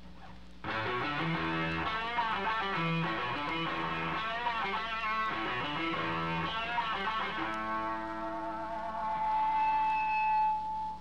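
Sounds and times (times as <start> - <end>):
low amplifier hum: 0.0 - 11.0
electric guitar note ringing: 0.6 - 11.0.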